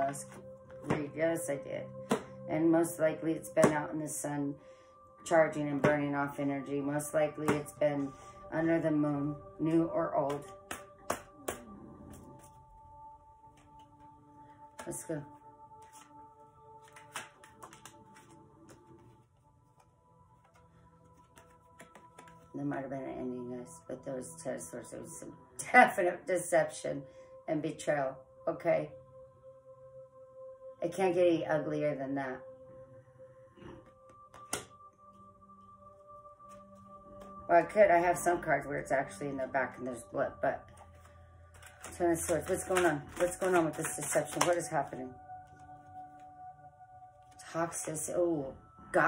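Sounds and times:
faint background music: 0.0 - 49.0.

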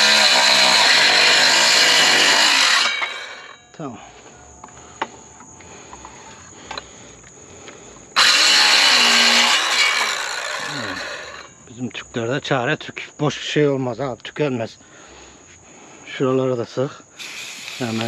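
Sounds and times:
circular saw cutting wood: 0.0 - 3.7, 8.2 - 11.6.

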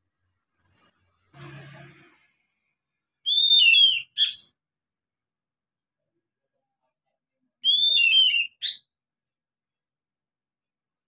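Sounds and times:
bird singing: 0.5 - 1.1, 3.2 - 4.6, 7.6 - 8.9.

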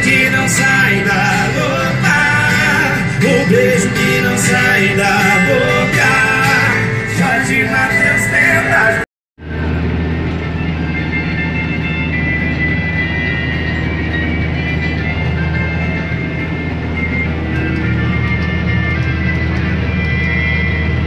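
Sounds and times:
diesel engine droning: 0.0 - 21.0.

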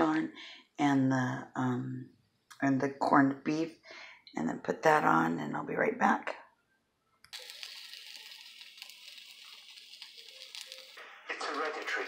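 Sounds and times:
sandwich sizzling in a pan: 7.3 - 12.0.

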